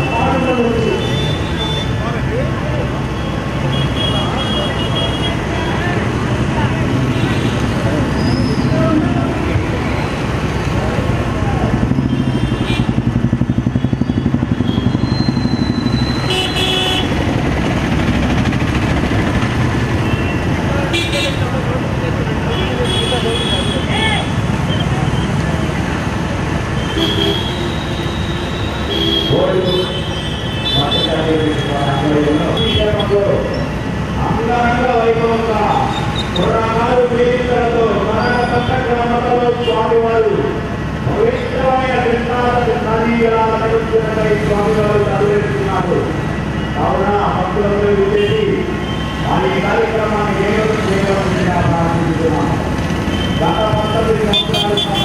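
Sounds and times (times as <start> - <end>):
crowd voices: 0.0 - 16.2, 17.2 - 28.5
vehicle engines running: 0.0 - 55.0.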